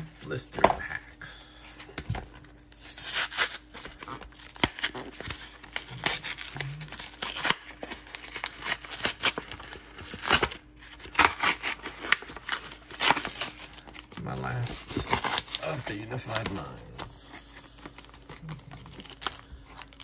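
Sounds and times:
cardboard tearing: 2.7 - 17.1.

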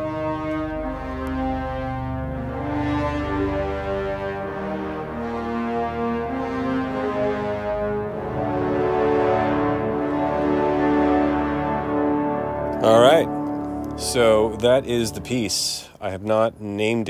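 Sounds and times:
brass orchestral chords: 0.0 - 16.6.

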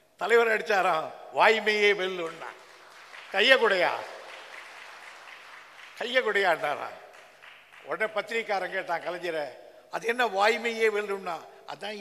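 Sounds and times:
audience applause: 2.5 - 8.0.

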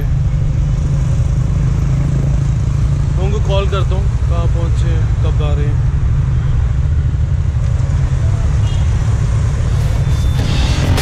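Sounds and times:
cars and scooters passing: 0.0 - 11.0
traffic rumble: 0.0 - 11.0
background music: 10.2 - 11.0.

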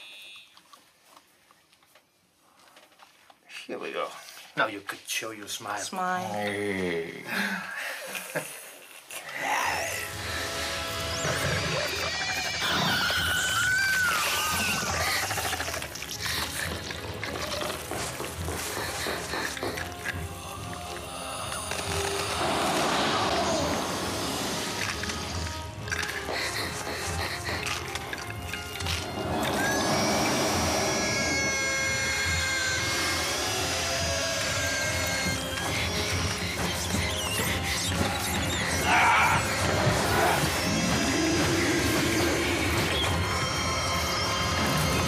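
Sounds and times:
high-pitched creature shrieks: 11.1 - 17.9, 29.0 - 45.0.

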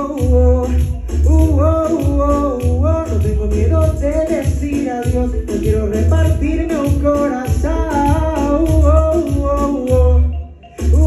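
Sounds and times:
man singing into microphone: 0.0 - 11.0
pop backing track with bass beat: 0.0 - 11.0.

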